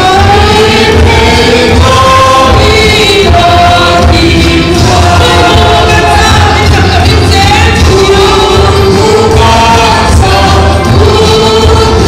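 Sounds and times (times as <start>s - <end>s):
band accompaniment with pulsing bass: 0.0s - 12.0s
group singing a hymn: 0.0s - 12.0s.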